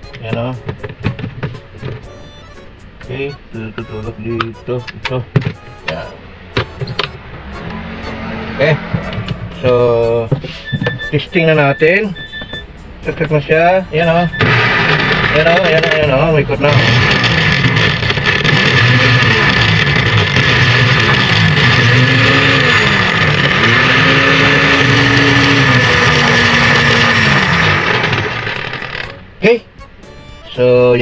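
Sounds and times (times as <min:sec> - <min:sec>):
blender motor whirring: 0:14.4 - 0:29.2.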